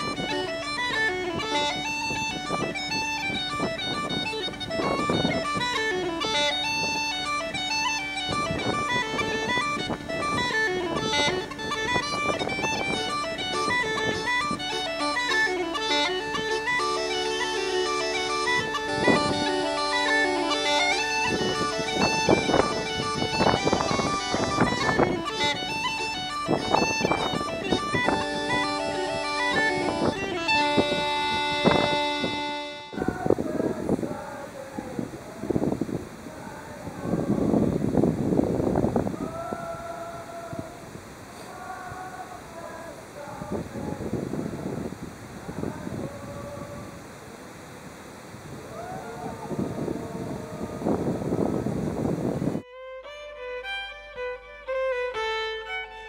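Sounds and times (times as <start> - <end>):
uilleann pipes playing a tune: 0.0 - 34.4, 45.6 - 56.0.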